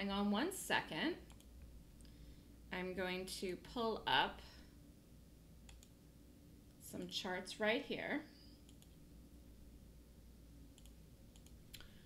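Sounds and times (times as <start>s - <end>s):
woman's voice: 0.0s - 1.3s, 2.7s - 4.7s, 6.8s - 8.4s
faint computer mouse clicks: 5.7s - 6.0s, 8.6s - 9.0s, 10.8s - 12.0s.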